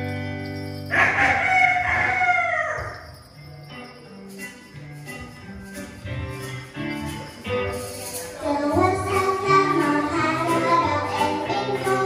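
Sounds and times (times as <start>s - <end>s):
rooster crowing: 0.9s - 3.1s.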